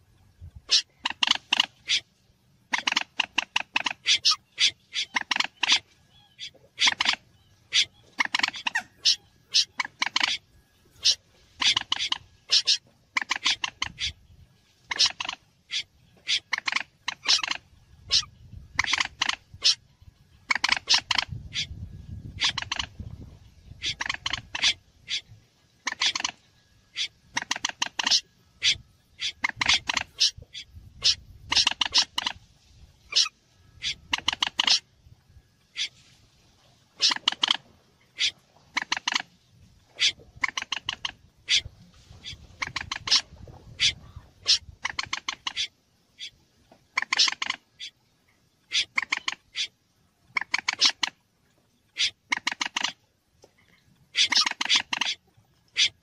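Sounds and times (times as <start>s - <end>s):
short sharp bird calls: 2.7s - 19.9s, 35.6s - 36.2s, 48.6s - 51.2s.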